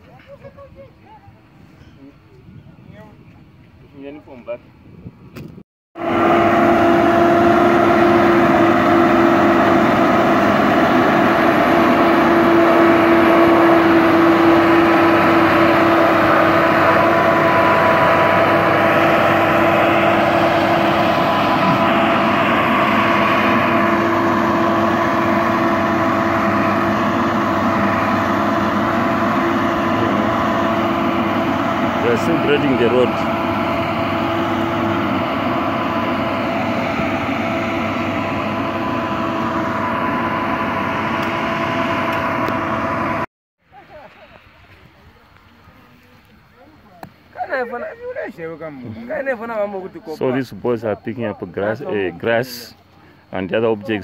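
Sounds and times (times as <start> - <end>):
diesel engine drone: 6.0 - 54.0.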